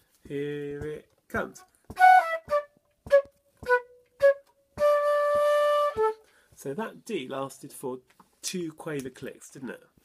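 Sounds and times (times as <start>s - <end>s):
flute playing: 1.9s - 6.3s.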